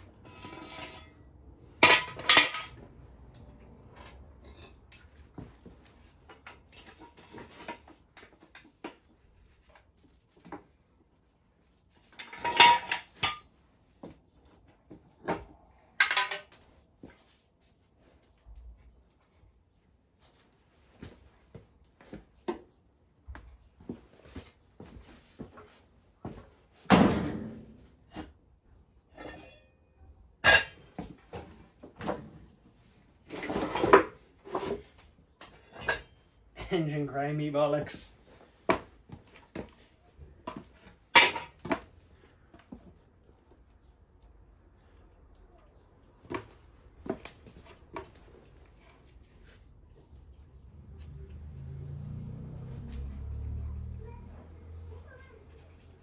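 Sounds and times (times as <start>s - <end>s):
metal scraping rattle: 0.0s - 2.8s
metal tools clanking: 0.1s - 3.5s, 4.1s - 5.2s, 12.0s - 13.6s, 15.4s - 16.6s, 29.0s - 31.4s, 33.3s - 37.1s.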